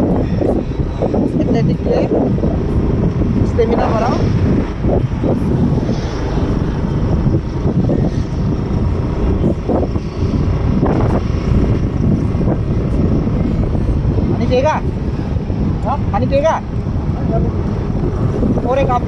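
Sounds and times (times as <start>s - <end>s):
passing traffic: 0.0s - 19.0s
wind rumble on microphone: 0.0s - 19.0s.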